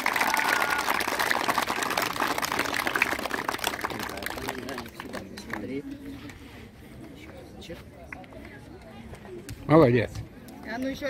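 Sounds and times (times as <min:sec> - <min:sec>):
children clapping: 0:00.0 - 0:05.8.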